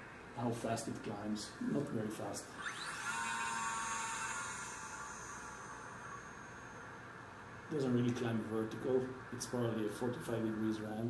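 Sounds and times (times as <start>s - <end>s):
electric motor and propeller whine: 2.2s - 10.8s.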